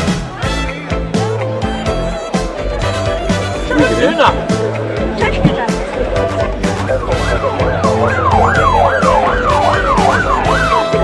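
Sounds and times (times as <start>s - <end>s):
background music: 0.0s - 11.0s
siren yelping: 6.7s - 11.0s.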